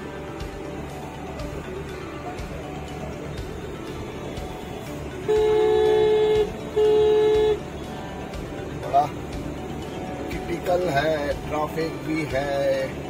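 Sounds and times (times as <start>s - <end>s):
car horn honks: 4.8s - 8.2s.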